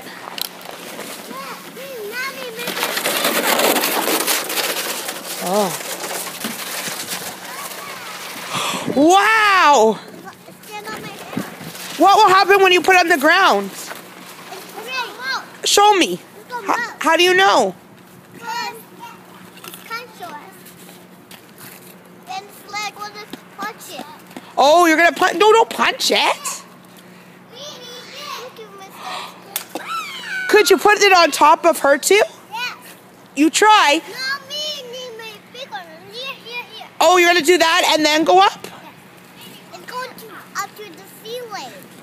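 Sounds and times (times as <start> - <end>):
snow and ice scraping on pavement: 0.6 - 8.6, 10.6 - 15.4.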